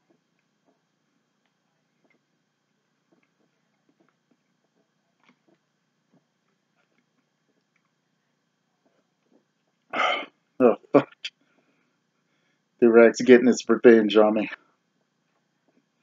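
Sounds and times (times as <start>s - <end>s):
cough-like burst of breath: 10.0s - 10.3s.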